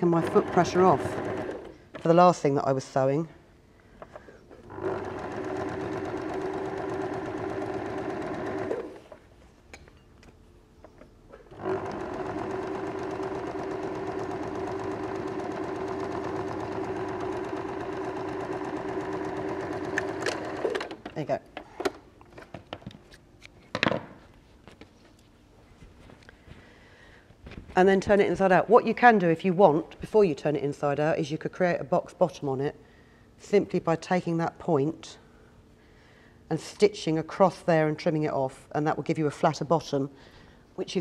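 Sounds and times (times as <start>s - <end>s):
sewing machine stitching: 0.0s - 2.1s, 4.6s - 9.2s, 11.4s - 21.1s.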